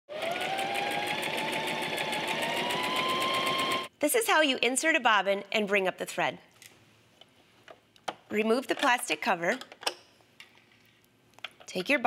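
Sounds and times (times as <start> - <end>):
sewing machine motor whine: 0.1 - 3.9.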